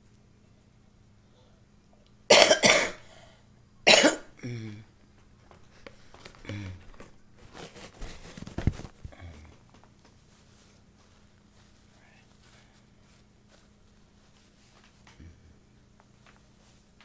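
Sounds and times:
woman coughing: 0:02.3 - 0:03.1, 0:03.9 - 0:04.6
throat noises: 0:04.4 - 0:05.0.

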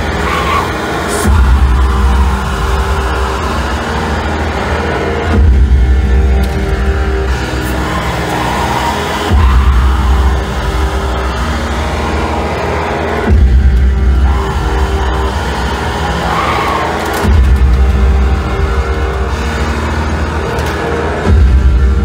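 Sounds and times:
droning backing with held tones: 0:00.0 - 0:22.0.

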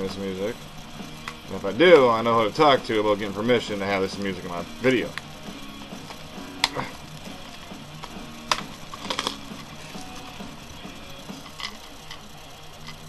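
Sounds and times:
faint background music: 0:00.0 - 0:13.0
plastic cassette case clicks: 0:06.0 - 0:06.8, 0:08.0 - 0:09.5, 0:11.4 - 0:12.2
plastic wrapper crinkling: 0:06.0 - 0:09.8.

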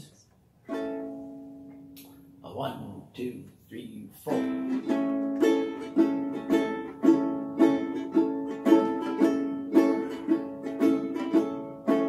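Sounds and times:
ukulele chord strummed: 0:00.7 - 0:02.0, 0:04.3 - 0:12.0.

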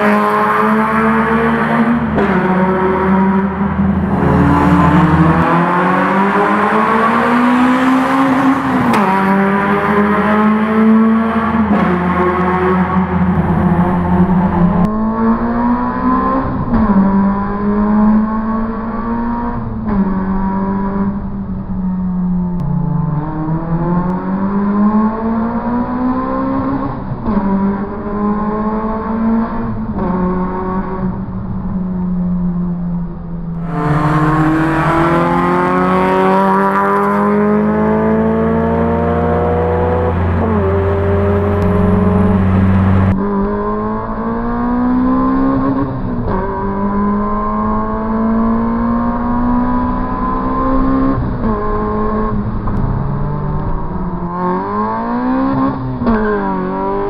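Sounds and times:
car engine accelerating hard: 0:00.0 - 0:57.0.

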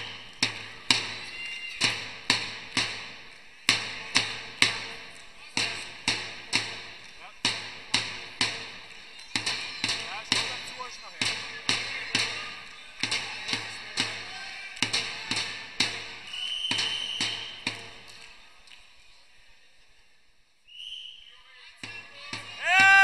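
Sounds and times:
sharp claps echoing in a hall: 0:00.0 - 0:19.2, 0:21.8 - 0:23.0
shrill referee's whistle: 0:16.2 - 0:17.7, 0:20.7 - 0:21.4
spectators cheering: 0:22.5 - 0:23.0.

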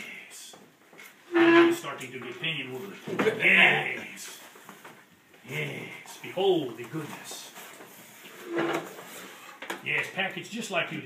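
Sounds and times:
cardboard scraping rustle: 0:06.9 - 0:09.6.

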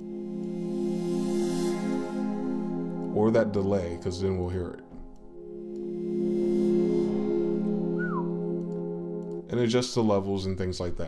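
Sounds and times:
synth pad sustained chord: 0:00.0 - 0:09.5
falling whistle-like glide: 0:08.0 - 0:08.4.

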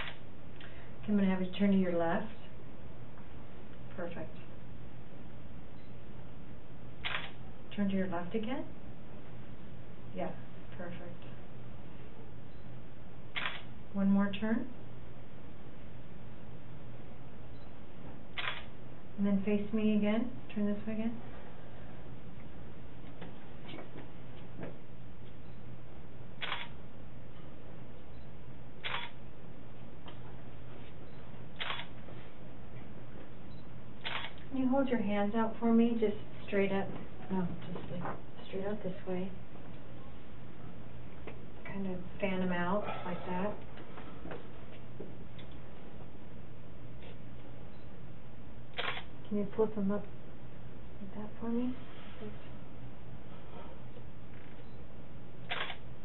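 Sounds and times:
steady low hum: 0:00.0 - 0:56.0
camera shutter clicking: 0:07.0 - 0:07.4, 0:13.4 - 0:13.7, 0:18.4 - 0:18.7, 0:26.4 - 0:26.7, 0:28.8 - 0:29.2, 0:31.6 - 0:31.9, 0:34.0 - 0:34.4, 0:48.8 - 0:49.1, 0:55.5 - 0:55.8.

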